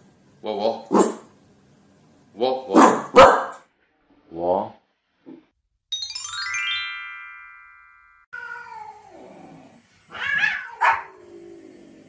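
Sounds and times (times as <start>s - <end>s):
terrier barking: 0.9s - 1.3s, 2.7s - 3.7s, 10.2s - 11.2s.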